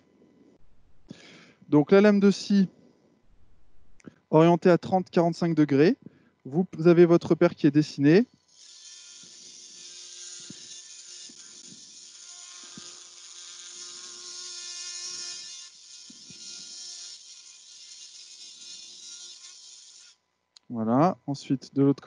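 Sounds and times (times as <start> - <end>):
bone saw whining: 0.6 - 1.4.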